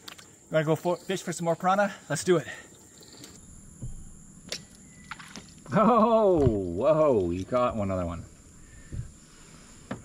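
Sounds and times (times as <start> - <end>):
thin high-pitched hum: 2.8 - 10.0
soft low thump: 3.7 - 4.2, 8.8 - 9.2.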